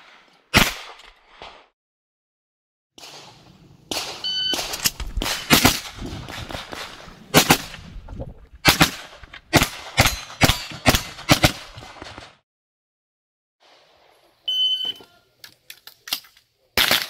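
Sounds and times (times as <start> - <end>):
gunshots in quick pairs: 0.0 - 1.8, 3.0 - 7.8, 8.6 - 12.4
shot timer beep: 4.2 - 4.6, 14.5 - 15.0.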